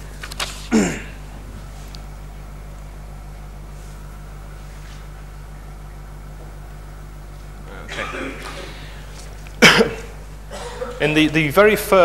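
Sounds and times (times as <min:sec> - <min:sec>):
low hum: 0:00.0 - 0:12.0
man coughing: 0:00.7 - 0:01.2, 0:07.7 - 0:09.0, 0:09.6 - 0:11.1.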